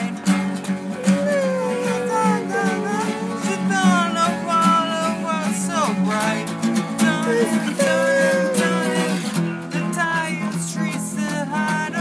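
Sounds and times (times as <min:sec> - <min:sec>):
acoustic guitars strumming: 0:00.0 - 0:12.0.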